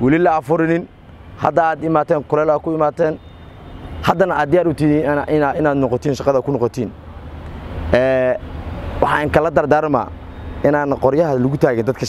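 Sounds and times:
man speaking: 0:00.0 - 0:03.2, 0:04.0 - 0:07.0, 0:07.9 - 0:12.0.

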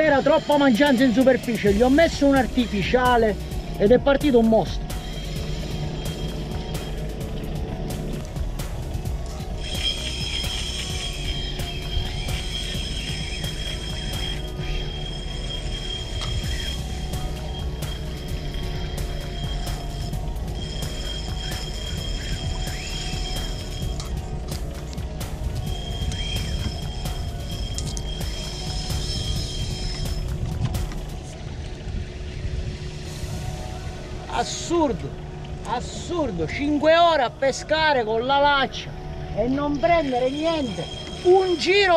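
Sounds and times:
fishing reel drag clicking and whining: 0:00.0 - 0:32.4, 0:34.4 - 0:41.9.

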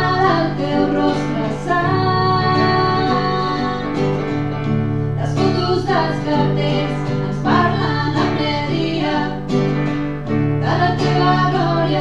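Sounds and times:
woman singing: 0:00.0 - 0:04.4, 0:05.2 - 0:09.6, 0:10.6 - 0:12.0
acoustic guitar: 0:00.0 - 0:12.0.

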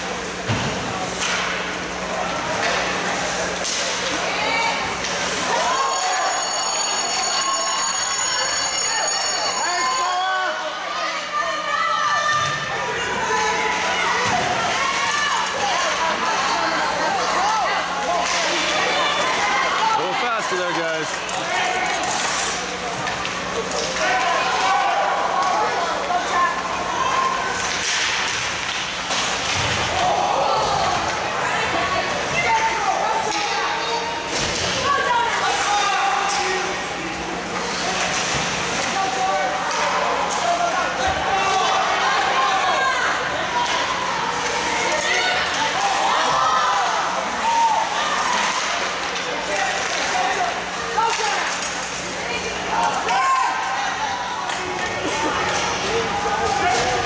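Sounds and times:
spectators talking and calling out: 0:00.0 - 0:57.0.

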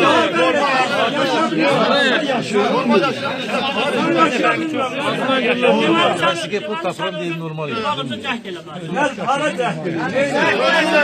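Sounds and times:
crowd voices talking over each other: 0:00.0 - 0:11.0.

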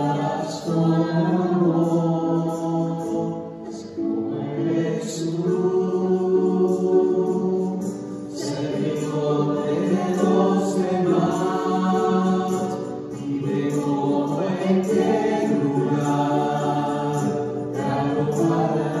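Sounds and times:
voices singing a hymn: 0:00.0 - 0:19.0.

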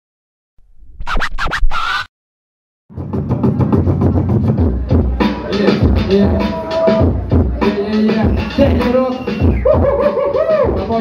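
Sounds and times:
turntable scratching: 0:00.8 - 0:02.1.

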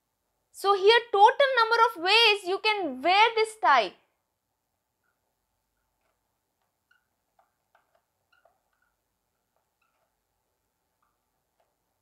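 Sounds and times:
marker squeaking on paper: 0:05.0 - 0:12.0.

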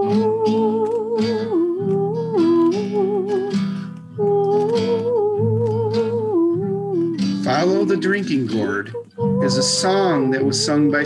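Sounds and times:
guitar accompaniment: 0:00.0 - 0:11.0
person humming with vibrato: 0:00.0 - 0:11.0.

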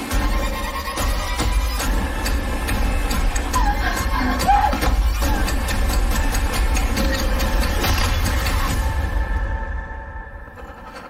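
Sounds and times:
rapid clicks and hits: 0:00.0 - 0:09.0.

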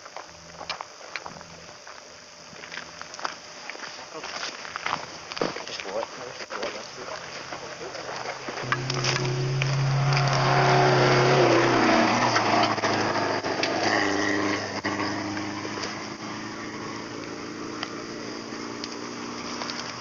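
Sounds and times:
car engine passing by: 0:08.6 - 0:17.7.

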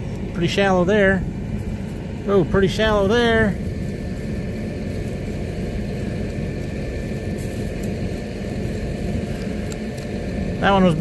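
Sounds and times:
tractor engine idling: 0:00.0 - 0:11.0.

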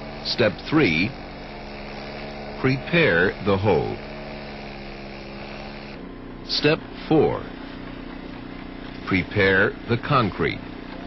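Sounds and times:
concrete saw engine hum: 0:00.0 - 0:11.0.

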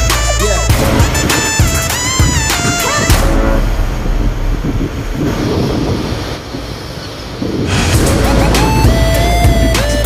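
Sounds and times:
wind buffeting microphone: 0:00.7 - 0:10.0.

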